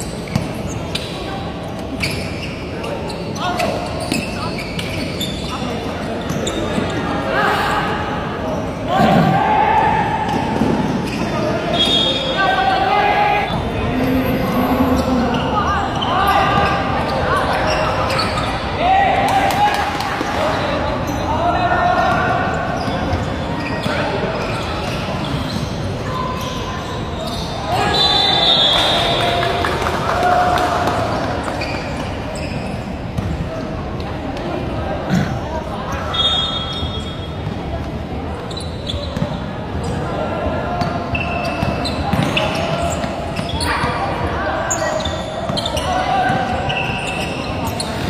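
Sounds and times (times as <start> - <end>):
people shouting and calling out: 11.4 - 22.6.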